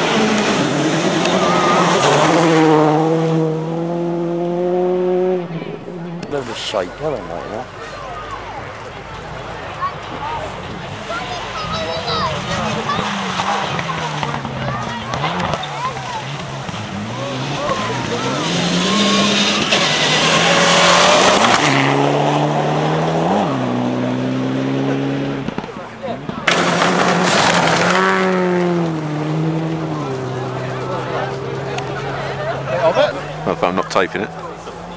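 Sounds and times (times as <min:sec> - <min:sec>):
rally car engine accelerating: 0:00.0 - 0:08.1, 0:08.8 - 0:34.9
loud rush of noise: 0:00.0 - 0:34.9.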